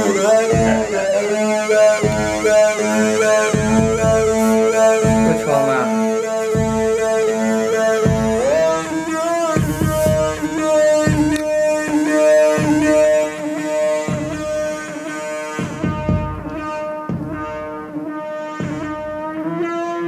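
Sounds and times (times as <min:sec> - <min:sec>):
low synth pulse: 0:00.0 - 0:20.0
sustained synthesizer tones: 0:00.0 - 0:20.0.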